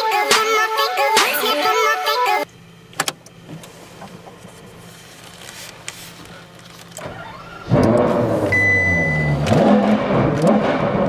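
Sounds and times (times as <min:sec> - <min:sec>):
low electrical hum: 0:02.4 - 0:09.4
ignition switch clicks: 0:02.9 - 0:03.4.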